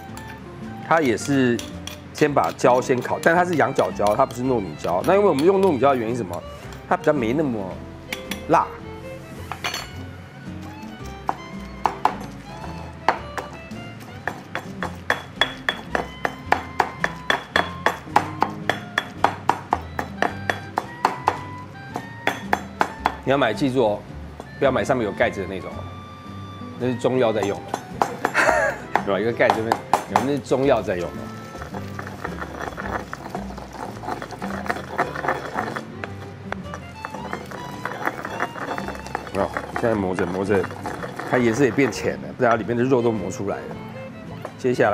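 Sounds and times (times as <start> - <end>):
background music: 0.0 - 44.9
stone pestle pounding in mortar: 0.9 - 7.0, 10.6 - 23.8, 27.3 - 42.7.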